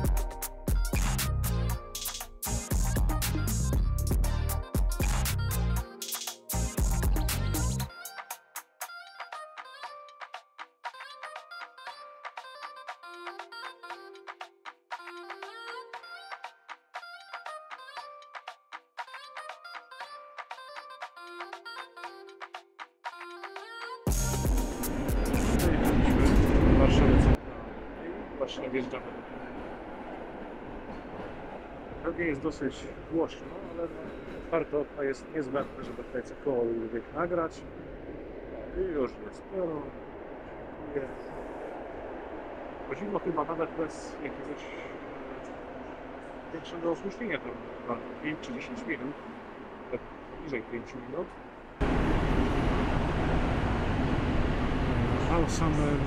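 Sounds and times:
train rumbling through a tunnel: 24.3s - 56.0s.

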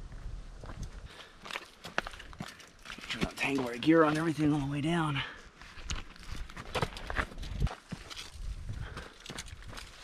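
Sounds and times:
footsteps crunching on dirt: 0.0s - 10.0s.

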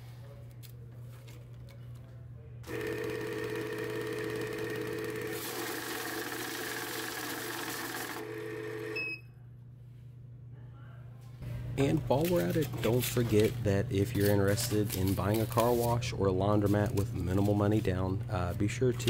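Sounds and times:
bill counting machine whirring: 2.6s - 9.2s.

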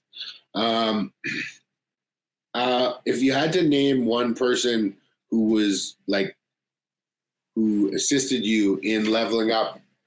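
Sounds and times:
man clearing throat: 0.7s - 1.5s.

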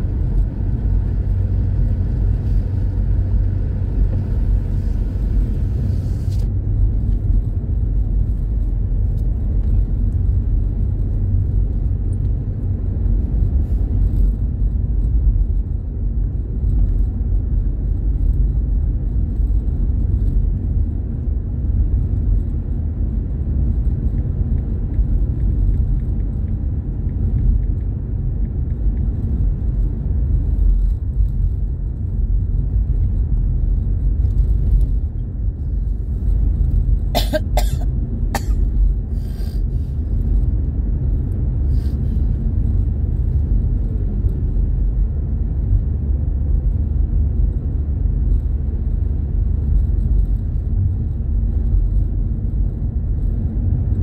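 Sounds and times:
car road and engine rumble: 0.0s - 54.0s.

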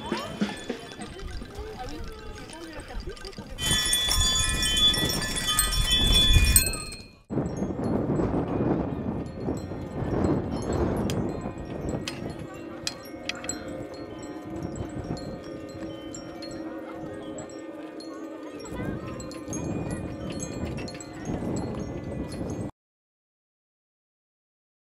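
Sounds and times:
metallic chiming: 0.0s - 22.7s
wind rumble on microphone: 1.1s - 17.6s, 18.6s - 22.7s.

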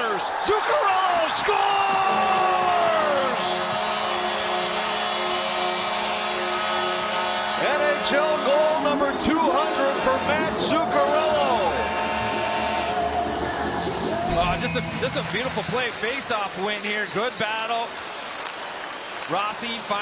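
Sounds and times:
crowd shouts and whoops: 0.0s - 6.7s, 10.7s - 16.2s
crowd cheering: 0.0s - 20.0s
goal horn sounding a steady chord: 3.0s - 13.0s.

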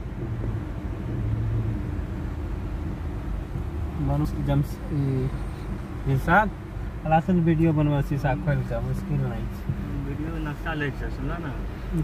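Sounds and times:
car engine hum inside cabin: 0.0s - 12.0s
road noise: 0.0s - 12.0s.

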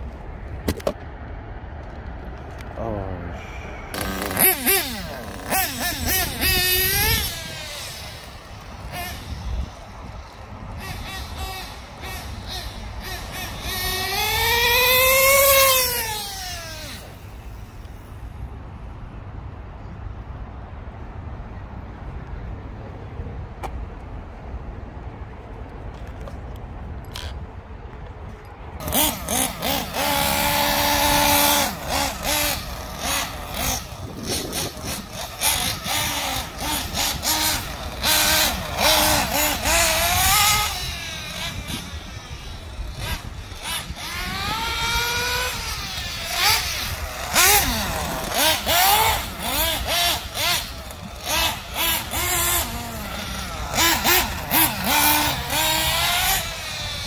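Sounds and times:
small engine revving whine: 3.4s - 18.1s, 28.8s - 57.0s.

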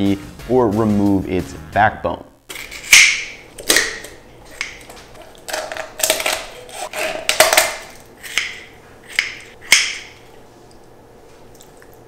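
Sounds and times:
kitchen shears snipping bones: 2.5s - 10.2s.

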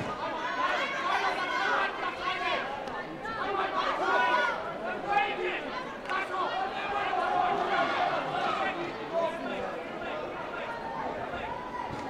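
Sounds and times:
echoing chatter and calls: 0.0s - 12.0s.

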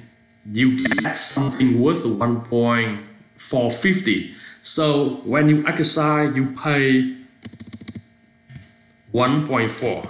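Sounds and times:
faint electrical hum: 0.0s - 10.0s
computer keyboard typing: 7.4s - 8.0s.

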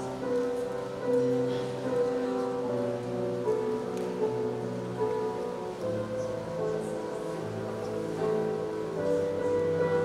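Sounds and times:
grand piano chords: 0.0s - 10.0s.

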